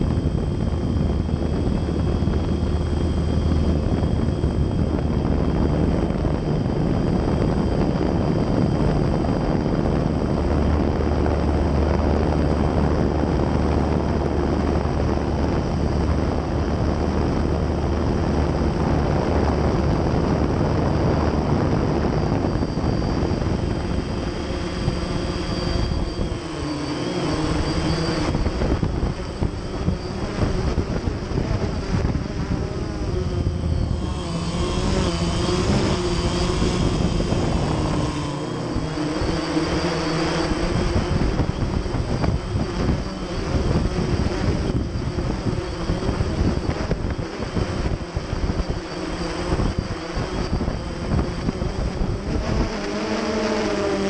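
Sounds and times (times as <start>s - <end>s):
drone motors buzzing: 0.0s - 54.0s.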